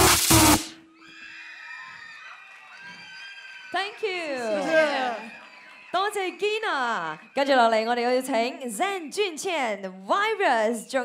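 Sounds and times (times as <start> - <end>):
loud electronic dance music: 0.0 - 0.8
audience cheering and screaming: 0.9 - 7.8.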